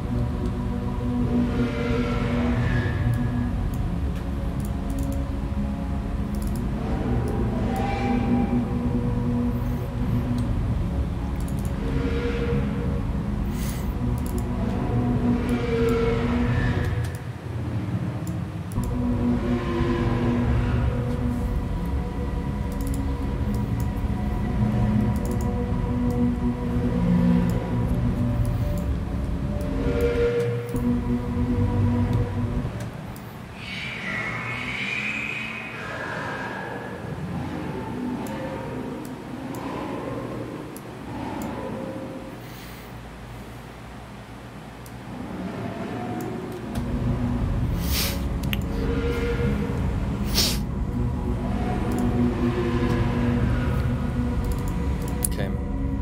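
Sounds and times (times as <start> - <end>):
heavy bass: 0.0 - 18.1, 18.7 - 38.3, 46.6 - 56.0
pitch-bending synth notes: 0.0 - 42.4, 45.0 - 56.0
sustained synth tones: 0.0 - 56.0.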